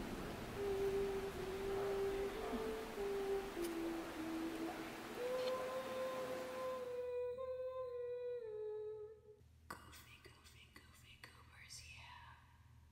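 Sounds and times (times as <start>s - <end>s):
person humming a held note: 0.4s - 9.4s.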